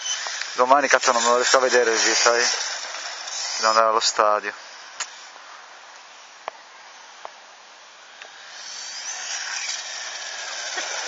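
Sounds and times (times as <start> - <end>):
rc truck motor whining: 0.0 - 5.3, 8.0 - 11.0
tyre hiss on asphalt: 0.0 - 11.0.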